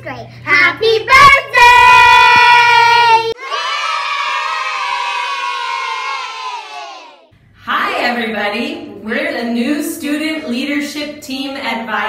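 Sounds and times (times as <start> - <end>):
children shouting a cheer: 1.1 - 7.3
crowd of children cheering: 1.6 - 7.3.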